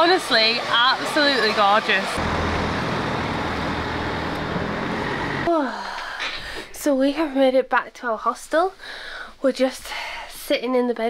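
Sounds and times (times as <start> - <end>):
road vehicle rumble: 0.0 - 5.5.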